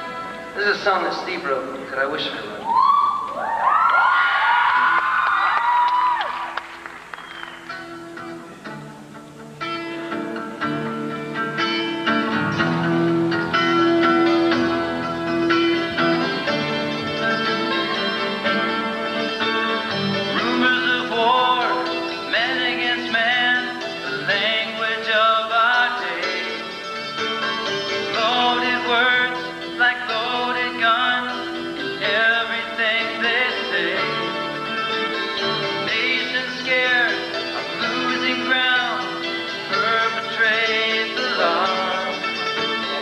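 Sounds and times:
man singing: 20.2s - 26.9s, 27.8s - 43.0s.

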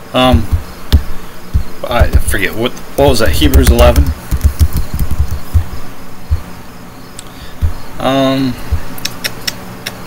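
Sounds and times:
computer keyboard keystrokes: 3.5s - 5.6s.

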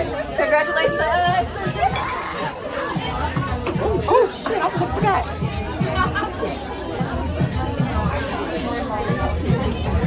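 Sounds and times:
crowd murmuring: 0.0s - 10.0s
people chattering: 0.0s - 10.0s.

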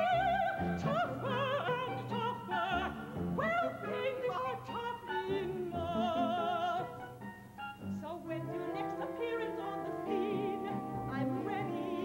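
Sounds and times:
woman singing operatically: 0.0s - 7.1s, 8.0s - 12.0s
musical accompaniment: 0.0s - 12.0s.

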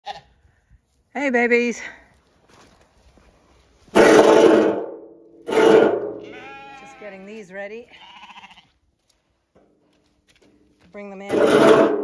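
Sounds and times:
lamb bleating: 6.2s - 7.3s, 7.9s - 8.7s.

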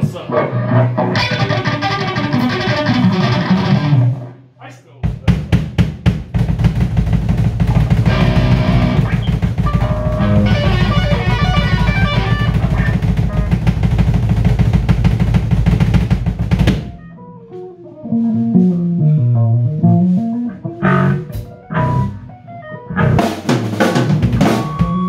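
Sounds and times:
rock band playing loud: 0.0s - 4.3s, 6.4s - 25.0s
drum hits: 5.0s - 17.0s, 23.0s - 25.0s
single guitar notes picked: 17.0s - 23.2s.

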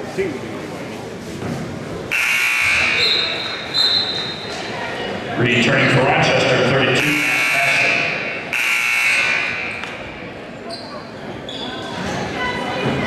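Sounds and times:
crowd talking in hall: 0.0s - 13.0s
scoreboard horn blasts: 2.1s - 3.0s, 7.0s - 9.5s.

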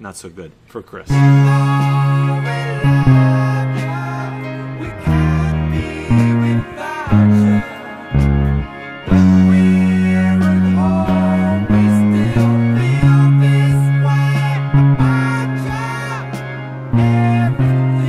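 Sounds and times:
electric bass guitar low notes: 1.1s - 18.0s
voices singing: 1.1s - 18.0s.

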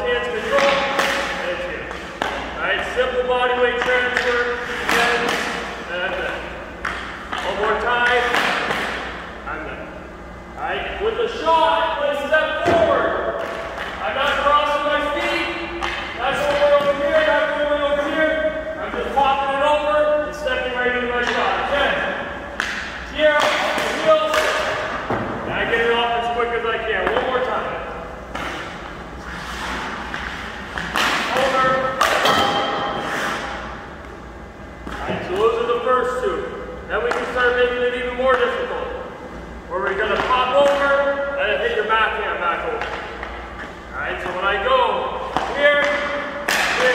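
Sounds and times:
man talking: 0.0s - 6.6s, 7.3s - 8.8s, 10.6s - 22.2s, 23.1s - 28.0s, 31.2s - 32.3s, 34.9s - 39.0s, 39.7s - 43.0s, 43.9s - 46.9s
hockey stick striking puck: 0.3s - 2.5s, 3.1s - 9.2s, 12.4s - 19.4s, 21.1s - 25.9s, 27.0s - 27.5s, 28.3s - 33.8s, 34.8s - 35.6s, 37.0s - 38.6s, 39.8s - 41.3s, 42.6s - 44.4s, 45.0s - 46.9s.

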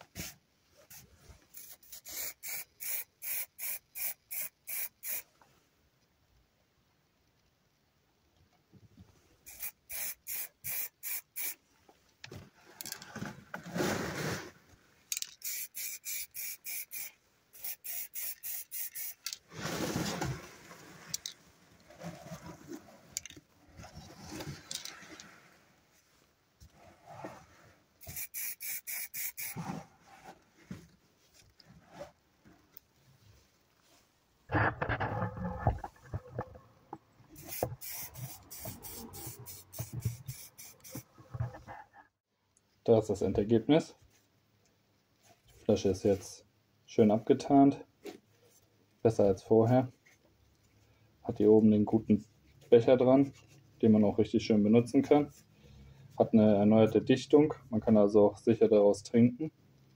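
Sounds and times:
handling and rubbing noise: 0.0s - 2.8s, 11.4s - 42.2s
spray can puffs: 1.5s - 5.3s, 9.5s - 11.6s, 15.1s - 19.4s, 28.0s - 29.7s, 37.4s - 41.1s.

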